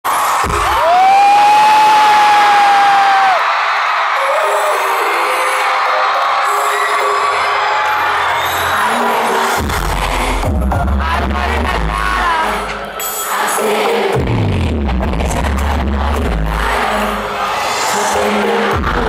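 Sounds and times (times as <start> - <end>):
crowd screaming and cheering: 0.0 - 19.0
deep bass beat: 9.6 - 12.8, 14.2 - 17.2, 18.7 - 19.0.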